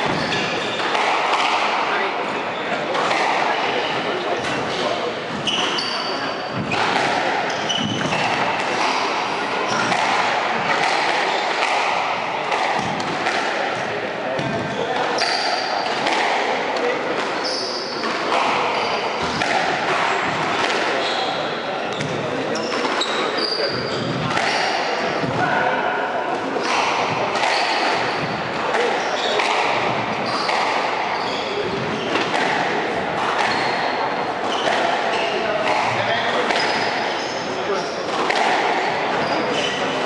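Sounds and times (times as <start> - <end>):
shoes squeaking on floor: 0.0 - 1.6, 2.3 - 11.8, 14.6 - 16.1, 16.8 - 19.4, 20.0 - 25.6, 26.6 - 40.0
voices talking: 0.0 - 40.0.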